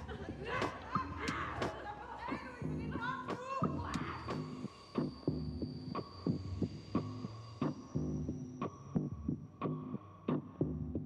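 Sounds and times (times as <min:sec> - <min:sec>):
faint steady high tone: 0:00.0 - 0:09.4
low pulsing beat: 0:00.0 - 0:11.0.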